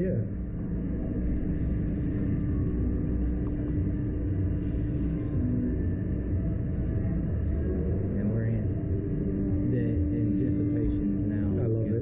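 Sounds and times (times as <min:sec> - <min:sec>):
constant machine hum: 0:00.0 - 0:12.0
low mechanical rumble: 0:00.0 - 0:12.0.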